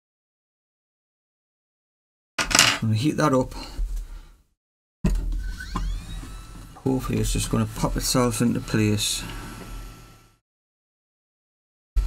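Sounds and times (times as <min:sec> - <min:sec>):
hot air blower whine: 0:05.8 - 0:10.4.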